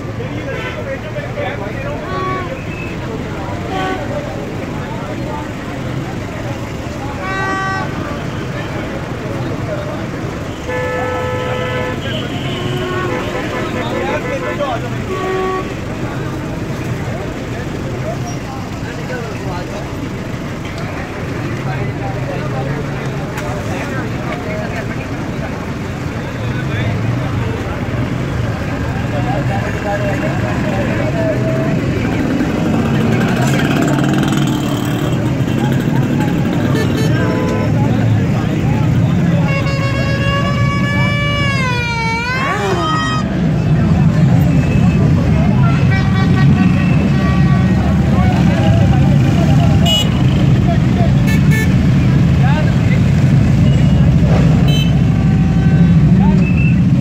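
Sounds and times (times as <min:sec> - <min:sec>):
passing vehicles: 0:00.0 - 0:57.0
car horns honking: 0:01.9 - 0:03.0, 0:10.5 - 0:15.9, 0:35.2 - 0:38.2, 0:38.8 - 0:43.7, 0:44.3 - 0:50.6, 0:51.2 - 0:52.0, 0:53.6 - 0:57.0.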